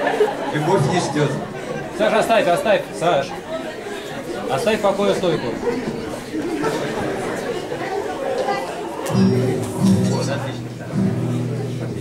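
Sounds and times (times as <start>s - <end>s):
murmur of voices: 0.0s - 12.0s
acoustic guitar chords strummed: 9.1s - 12.0s.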